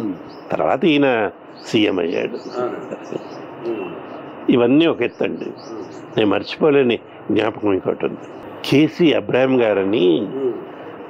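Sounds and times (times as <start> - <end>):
man speaking: 0.0 - 3.0, 3.6 - 10.7
faint bird chirps: 1.4 - 6.6.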